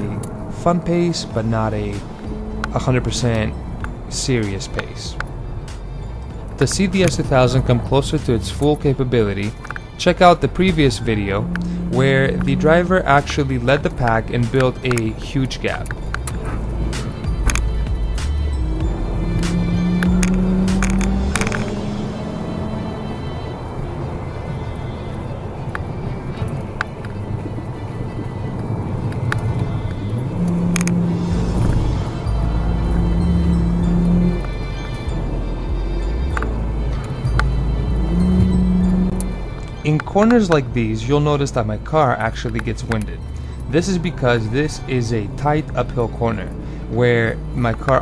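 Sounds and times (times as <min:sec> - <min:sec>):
background music: 0:00.0 - 0:48.0
car engine: 0:00.0 - 0:48.0
road rumble: 0:00.0 - 0:48.0.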